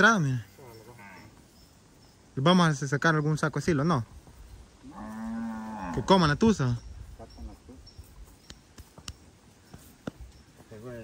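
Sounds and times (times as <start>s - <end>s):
cow mooing: 4.8s - 6.3s.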